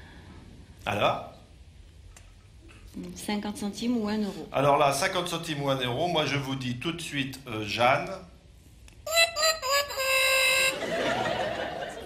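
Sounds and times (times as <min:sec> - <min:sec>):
audience laughter: 0:10.6 - 0:12.0.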